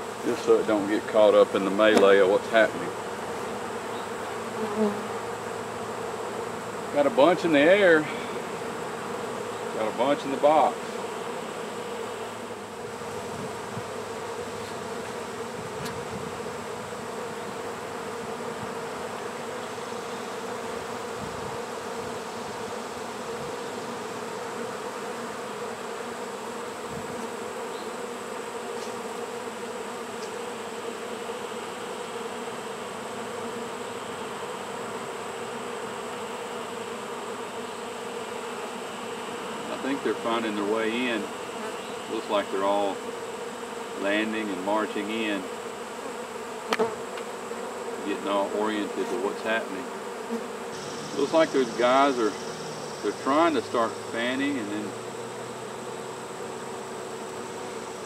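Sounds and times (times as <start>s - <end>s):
honeybees buzzing: 0.0s - 58.0s.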